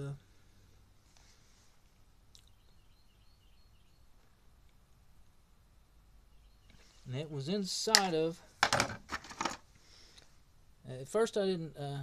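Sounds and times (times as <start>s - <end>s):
faint steady low hum: 0.0s - 12.0s
faint high chirps: 2.3s - 4.2s.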